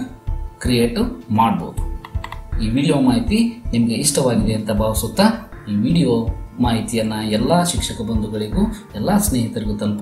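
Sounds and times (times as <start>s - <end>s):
background music: 0.0s - 10.0s
computer mouse clicks: 2.0s - 2.5s.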